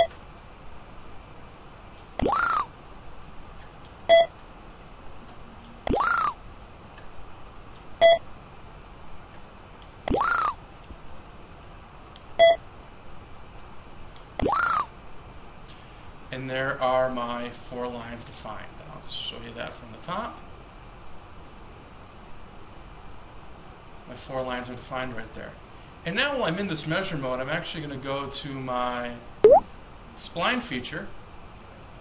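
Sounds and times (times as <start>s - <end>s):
short beep: 29.4s - 29.6s.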